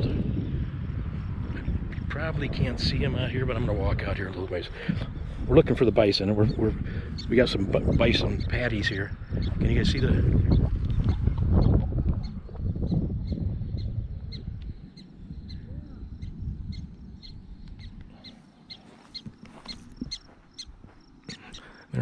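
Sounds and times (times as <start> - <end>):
prairie dogs chirping: 3.2 - 22.0.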